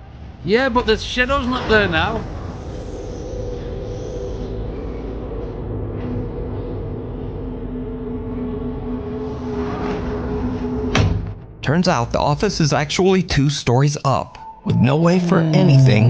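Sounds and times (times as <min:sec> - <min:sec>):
deep rumble: 0:00.0 - 0:13.4
dark ambient drone: 0:00.0 - 0:16.0.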